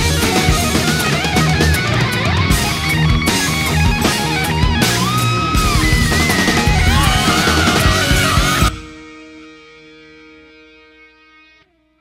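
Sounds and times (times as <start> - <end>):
distorted electric guitar chord: 0.0 - 11.5.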